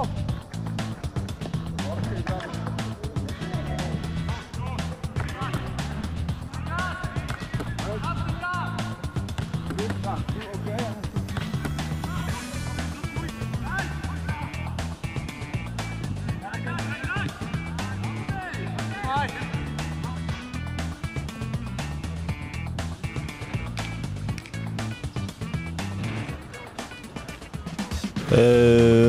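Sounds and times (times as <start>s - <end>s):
song with heavy bass and vocals: 1.6s - 29.0s.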